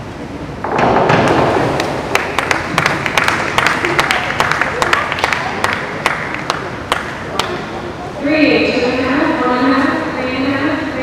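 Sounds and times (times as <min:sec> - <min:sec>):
voices in echoing hall: 0:00.2 - 0:11.0
scattered hand clapping: 0:01.2 - 0:07.6.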